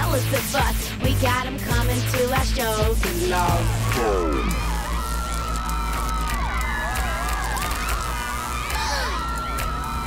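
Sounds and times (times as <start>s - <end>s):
low hum: 1.8s - 10.0s
crowd noise: 3.0s - 10.0s
wavering electronic whine: 3.1s - 10.0s.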